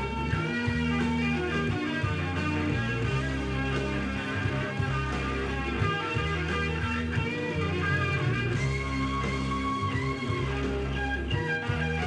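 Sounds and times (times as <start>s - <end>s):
electric guitar: 0.0s - 12.0s
held bass notes: 0.0s - 12.0s.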